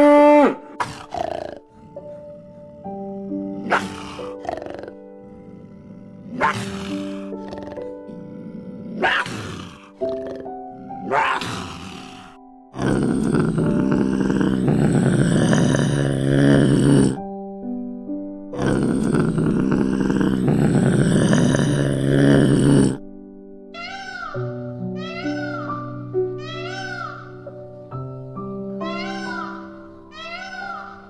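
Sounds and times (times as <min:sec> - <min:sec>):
wild cat calling: 0:00.0 - 0:17.2, 0:23.8 - 0:27.5, 0:28.8 - 0:31.0
soft background music: 0:00.0 - 0:31.0.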